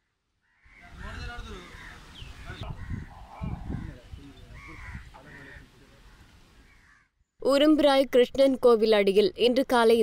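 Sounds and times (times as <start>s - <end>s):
crows cawing: 0.4s - 7.2s
people talking: 7.4s - 10.0s.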